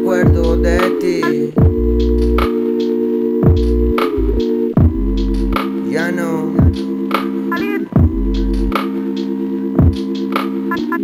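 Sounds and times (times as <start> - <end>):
low synth chord: 1.6 - 5.6.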